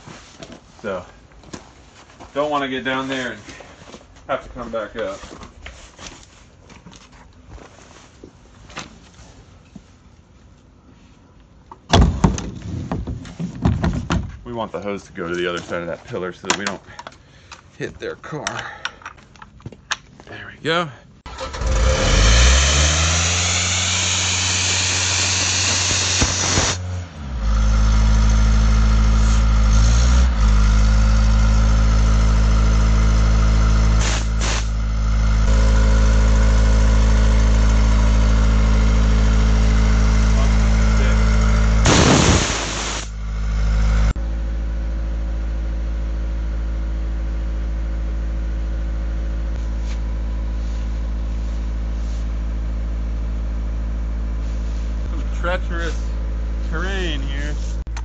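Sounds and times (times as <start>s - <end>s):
diesel air compressor running: 21.3s - 57.9s
compressed air blast: 22.5s - 26.8s, 34.0s - 34.8s, 41.8s - 43.2s.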